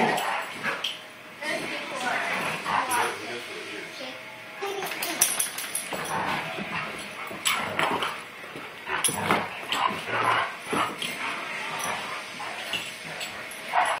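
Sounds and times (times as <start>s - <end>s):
dogs play-wrestling vocalizing: 0.0s - 3.2s, 4.6s - 14.0s.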